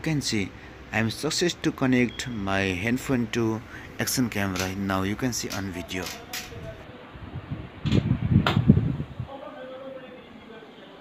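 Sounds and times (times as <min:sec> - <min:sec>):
sharp clicks: 0:04.5 - 0:04.8, 0:05.4 - 0:06.7.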